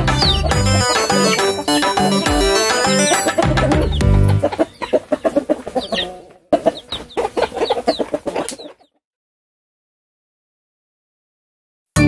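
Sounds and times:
music track: 0:00.0 - 0:04.6
chicks cheeping: 0:00.0 - 0:09.0
hen clucking: 0:00.0 - 0:09.0.

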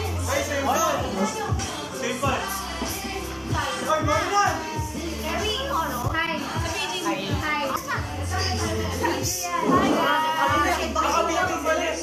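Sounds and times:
background music with bass: 0:00.0 - 0:12.0
young people talking: 0:00.0 - 0:12.0.

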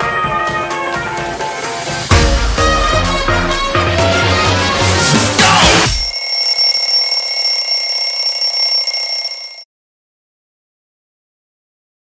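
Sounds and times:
alarm clock ringing: 0:05.8 - 0:09.7.

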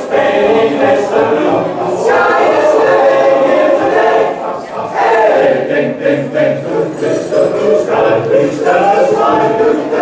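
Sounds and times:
men's choir singing a cappella: 0:00.0 - 0:10.0.

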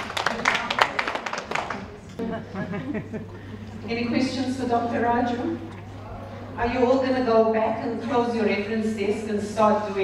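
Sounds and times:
audience applauding: 0:00.0 - 0:02.0.

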